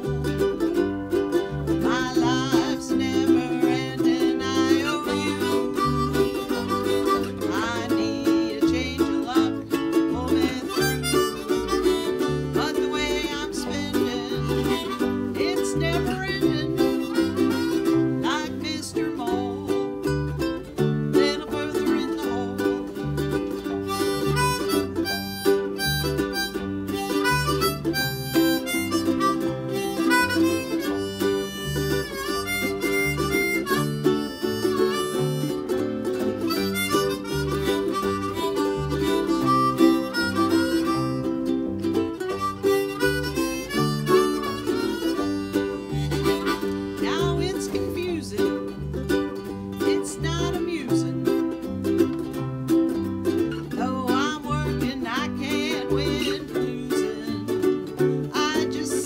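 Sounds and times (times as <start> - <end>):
blues harmonica lead: 0.0 - 59.0
plucked bass line: 0.0 - 59.0
strummed ukuleles: 0.0 - 59.0.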